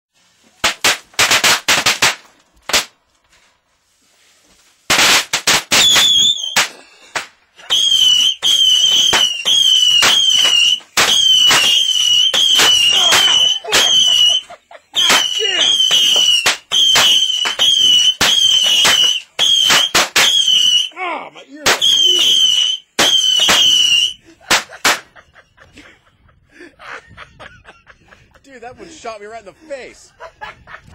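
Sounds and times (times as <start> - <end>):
fireworks popping and cracking: 0.4 - 3.0, 4.7 - 20.9, 21.6 - 25.2
firecracker bangs: 0.6 - 3.0, 4.9 - 14.4, 15.0 - 20.9, 21.6 - 25.1
shrill wavering whistles: 5.7 - 6.7, 7.6 - 21.0, 21.8 - 24.2.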